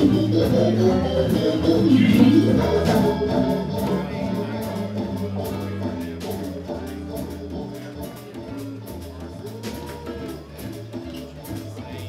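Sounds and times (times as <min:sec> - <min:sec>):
organ sustained chords: 0:00.0 - 0:09.5
bass line: 0:00.0 - 0:12.0
drums: 0:00.0 - 0:12.0.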